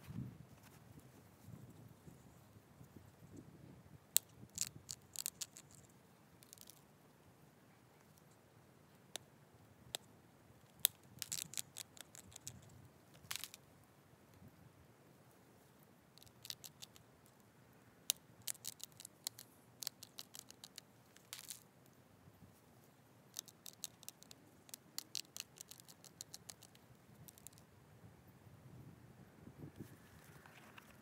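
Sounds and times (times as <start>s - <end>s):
stone flakes clicking and snapping: 4.2s - 6.8s, 10.6s - 13.6s, 16.2s - 17.0s, 18.1s - 21.7s, 23.3s - 27.6s.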